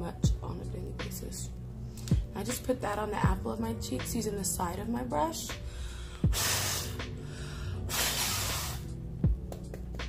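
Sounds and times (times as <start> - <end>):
background music: 0.0 - 10.0
woman blowing on a brush: 6.3 - 7.2, 7.9 - 9.0.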